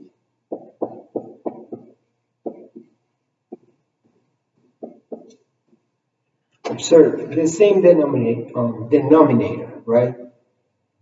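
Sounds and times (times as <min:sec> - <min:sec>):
marker writing on whiteboard: 0:00.0 - 0:05.9.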